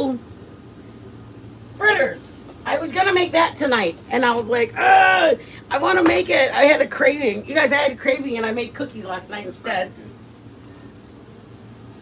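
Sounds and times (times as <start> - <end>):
sandwich frying hiss: 0.0 - 12.0.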